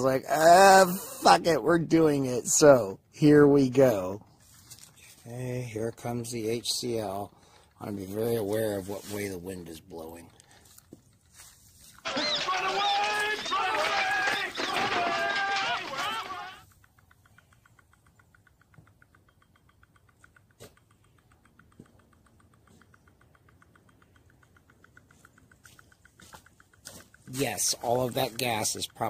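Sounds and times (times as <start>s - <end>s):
faint rapid ticking: 0.0s - 29.0s.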